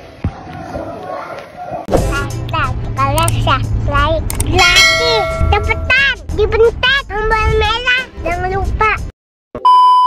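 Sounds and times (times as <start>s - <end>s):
background music: 1.9s - 9.1s
high child-like voice singing: 1.9s - 9.1s.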